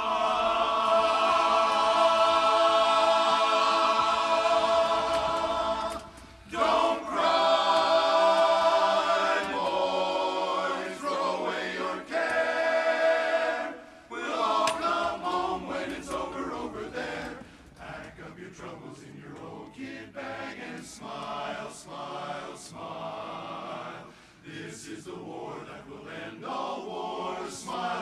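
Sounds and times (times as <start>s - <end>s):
men's chorus singing a cappella: 0.0s - 28.0s.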